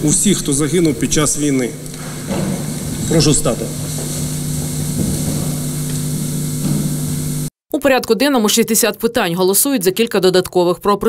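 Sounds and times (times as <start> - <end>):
man speaking: 0.0 - 1.8, 3.0 - 4.0
low room hum: 0.0 - 7.5.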